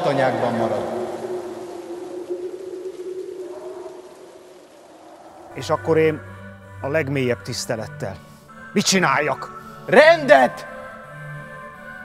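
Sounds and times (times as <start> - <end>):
wavering higher tone: 0.0 - 6.6.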